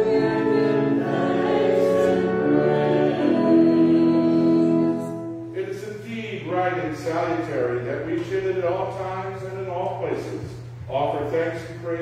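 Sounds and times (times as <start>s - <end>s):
choir singing sustained chords: 0.0s - 5.8s.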